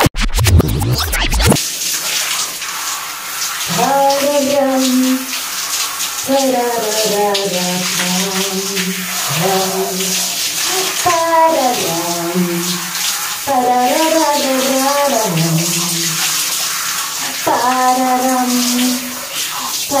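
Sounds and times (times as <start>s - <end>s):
shower water spraying on hair: 1.6s - 20.0s
woman singing wordless notes: 3.7s - 5.3s, 6.3s - 12.8s.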